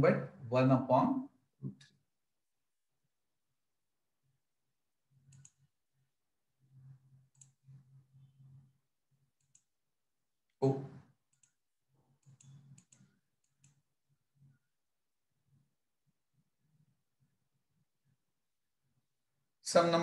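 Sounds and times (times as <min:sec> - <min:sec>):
computer mouse clicks: 0:05.2 - 0:05.7, 0:07.2 - 0:07.8, 0:09.4 - 0:09.7, 0:11.3 - 0:13.8.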